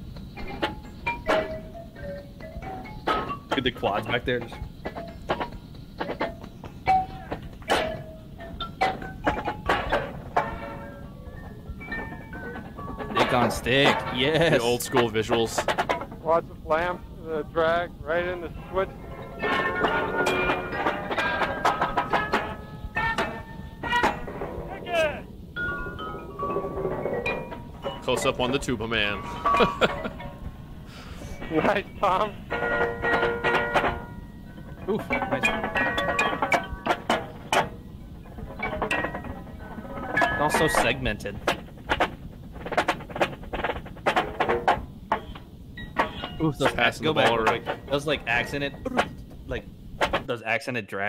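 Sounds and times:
keyboard percussion notes: 0.0 - 50.3
drumline playing: 2.4 - 45.4.

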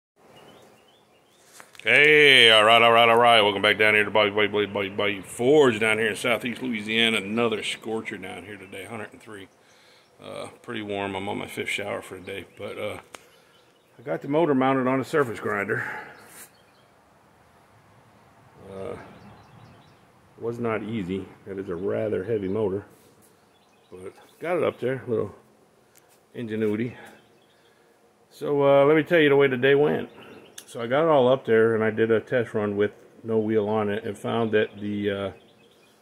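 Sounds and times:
man's loud voice: 1.8 - 9.4
faint bird chirps: 6.5 - 14.1, 15.4 - 17.0, 18.2 - 28.5, 29.8 - 30.9
short high hiss: 16.2 - 16.6.

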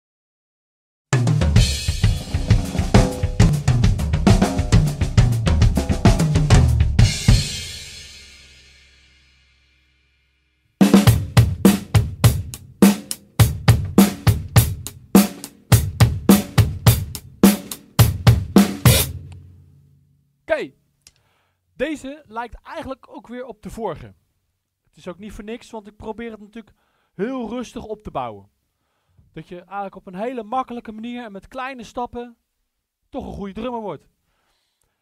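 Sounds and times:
drum kit groove: 1.1 - 9.2, 10.8 - 19.5
busy drum passage: 1.2 - 8.6, 10.8 - 19.3.

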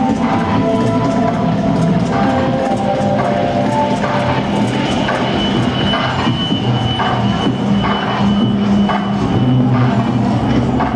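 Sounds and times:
electronic beat: 0.0 - 10.9
high steady tone: 0.0 - 10.9
low drone: 0.0 - 10.9.

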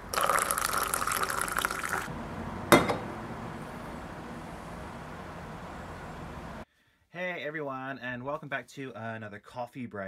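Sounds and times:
coffee pouring into a mug: 0.1 - 2.1.

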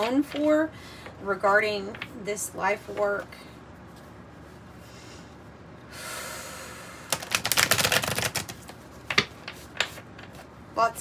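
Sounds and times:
cards clicking while shuffled: 7.1 - 10.4.

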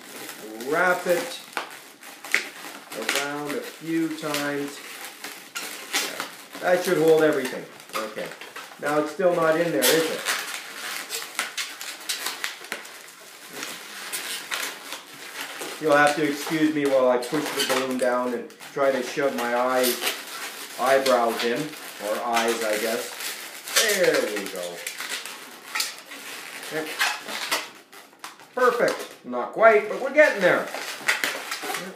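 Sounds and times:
balloons squeaking and rubbing: 0.0 - 31.9.

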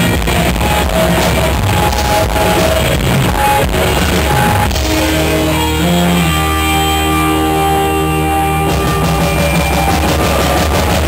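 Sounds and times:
electric guitar and bass chord: 0.0 - 11.0.

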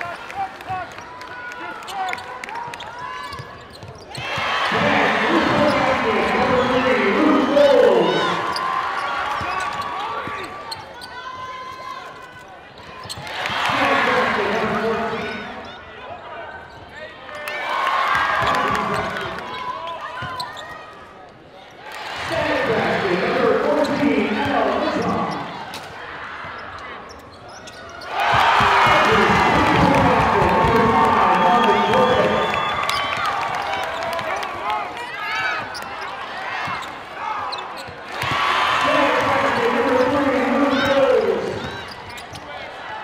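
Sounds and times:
sneakers squeaking: 1.8 - 15.9, 18.4 - 21.1, 23.2 - 42.8
sneakers squeaking on hardwood: 1.9 - 4.4, 26.4 - 28.4, 35.4 - 38.4, 40.2 - 42.6
crowd cheering and shouting: 4.2 - 12.6, 13.3 - 15.6, 17.3 - 20.5, 28.0 - 42.0.

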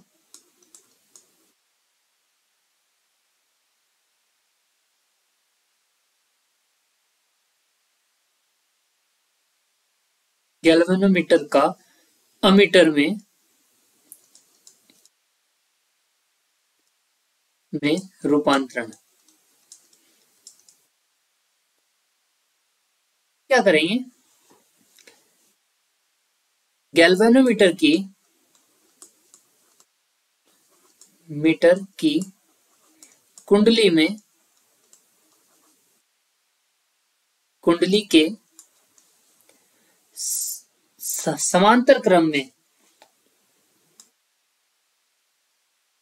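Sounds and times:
faint clicks: 0.2 - 1.4, 14.0 - 15.2, 18.9 - 20.9, 28.5 - 29.9, 32.2 - 33.6, 34.5 - 35.9, 38.4 - 39.6, 43.9 - 44.2
stylus tapping on tablet screen: 14.1 - 15.1, 19.0 - 20.9.

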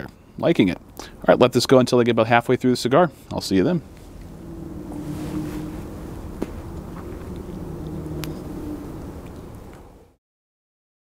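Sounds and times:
vehicle engine humming: 3.2 - 10.2.

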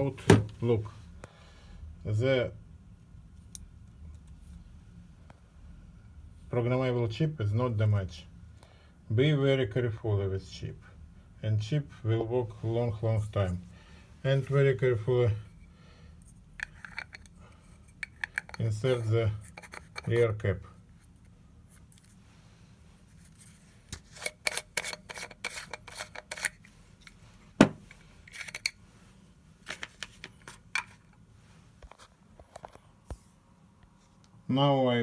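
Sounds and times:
plastic caps clicking: 18.0 - 18.6.

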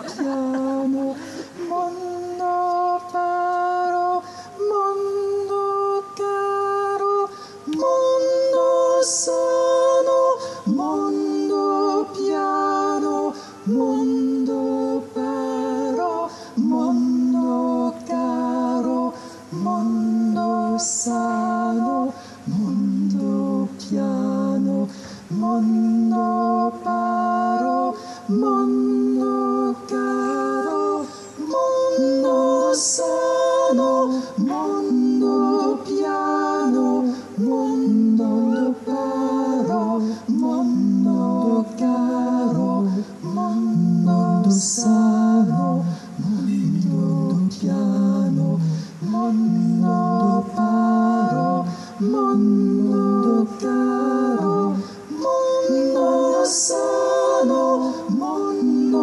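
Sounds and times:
person singing classical melody: 0.0 - 59.0
singer breathing: 1.1 - 1.7, 4.2 - 4.6, 7.3 - 7.7, 10.4 - 10.6, 16.3 - 16.6, 22.2 - 22.5, 24.9 - 25.3, 48.6 - 49.0, 51.7 - 52.0, 54.8 - 55.1.

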